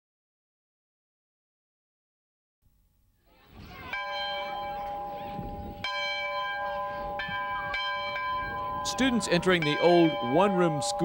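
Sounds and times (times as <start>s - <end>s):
faint outdoor background: 2.6s - 11.0s
large bell ringing: 3.8s - 11.0s.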